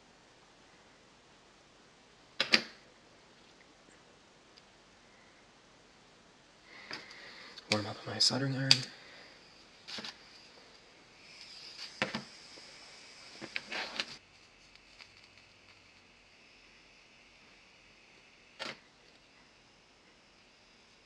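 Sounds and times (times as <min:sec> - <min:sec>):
faint steady hiss: 0:00.0 - 0:21.0
rustling: 0:09.0 - 0:16.2.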